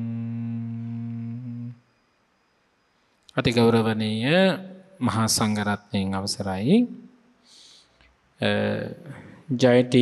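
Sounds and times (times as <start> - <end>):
man humming a long note: 0.0 - 1.8.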